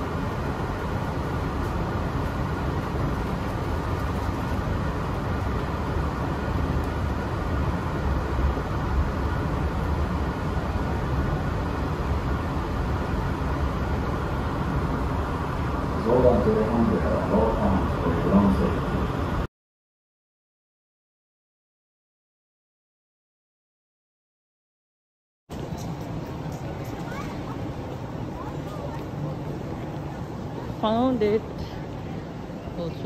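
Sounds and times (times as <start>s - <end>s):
train car rumble and hum: 0.0s - 19.5s, 25.5s - 33.0s.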